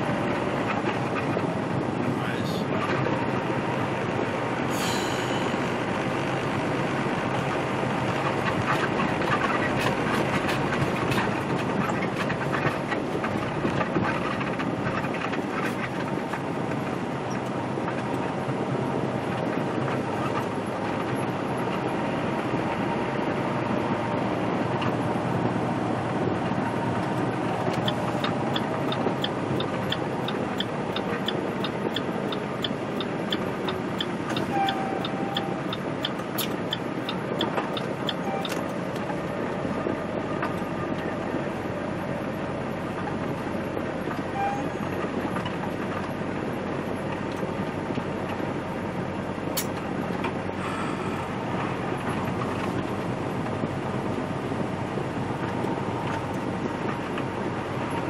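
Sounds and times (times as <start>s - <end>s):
truck engine and road noise: 0.0s - 58.0s
light even ticking: 27.6s - 39.1s.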